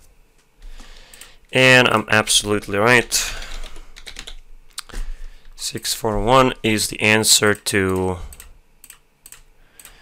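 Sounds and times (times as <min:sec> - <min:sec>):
computer mouse clicks: 0:07.9 - 0:10.0.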